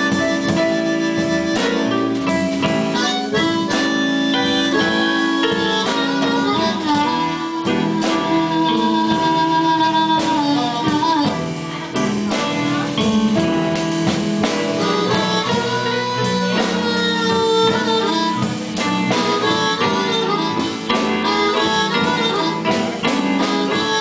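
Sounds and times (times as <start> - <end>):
bass and drums: 0.0 - 24.0
electric guitar: 0.0 - 24.0
harmonica: 0.0 - 24.0.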